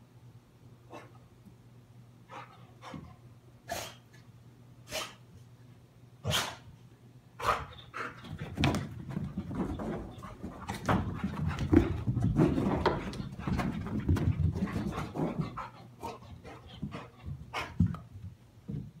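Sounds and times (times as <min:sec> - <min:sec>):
dogs panting: 0:07.4 - 0:18.0
dogs scuffling: 0:08.2 - 0:19.0.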